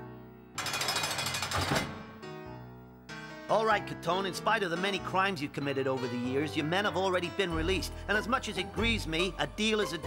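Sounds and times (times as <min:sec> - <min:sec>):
loud rapid rattling: 0:00.6 - 0:02.2
cartoon background music: 0:02.3 - 0:10.0.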